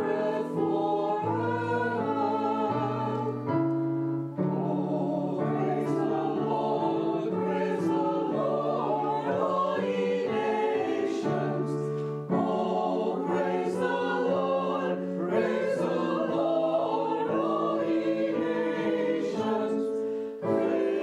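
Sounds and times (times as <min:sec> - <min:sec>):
choir singing in harmony: 0:00.0 - 0:21.0.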